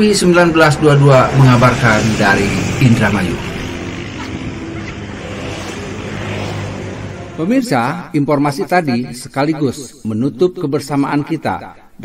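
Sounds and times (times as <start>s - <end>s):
road traffic passing: 0.0s - 8.2s.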